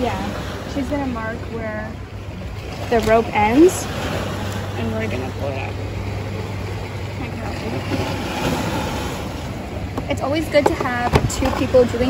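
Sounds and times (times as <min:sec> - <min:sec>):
outdoor noise rush: 0:00.0 - 0:12.0.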